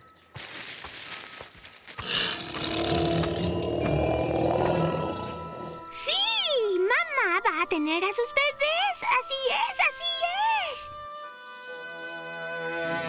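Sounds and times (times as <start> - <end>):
background music: 0.0 - 13.0
cartoon dinosaur roar: 2.0 - 5.8.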